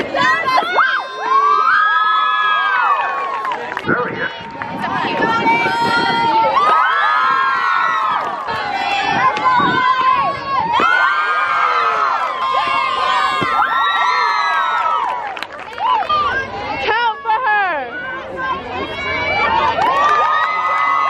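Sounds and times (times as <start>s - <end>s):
girls yelling a cheer: 0.0s - 3.4s, 4.9s - 15.2s.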